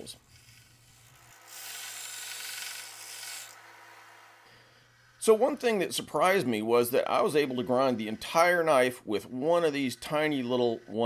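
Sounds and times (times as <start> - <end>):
belt sander motor hum: 0.3 - 5.8
hissing grind of sanding: 0.3 - 6.4, 7.0 - 11.0.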